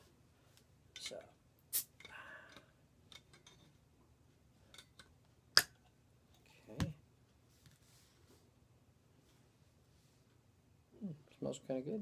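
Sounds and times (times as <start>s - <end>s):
carbonated soda hiss: 1.7s - 2.0s.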